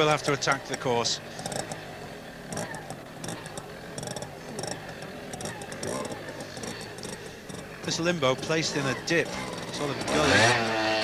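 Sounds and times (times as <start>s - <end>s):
small motorcycle engine blipping: 0.0s - 11.0s
crowd murmur: 1.2s - 10.5s.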